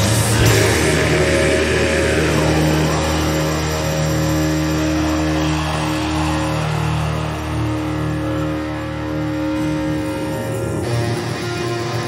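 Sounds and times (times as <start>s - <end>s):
distorted guitars sustained notes: 0.0s - 12.0s.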